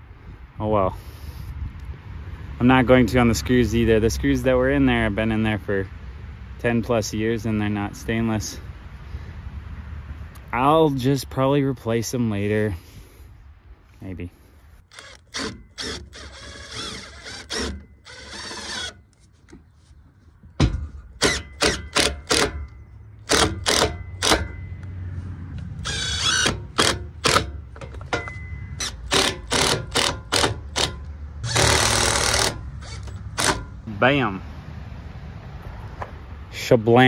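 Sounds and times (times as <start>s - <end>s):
cordless drill driving bolts: 14.9s - 19.2s, 20.9s - 24.6s, 25.8s - 33.8s
sharp clicks and knocks: 20.4s - 33.8s.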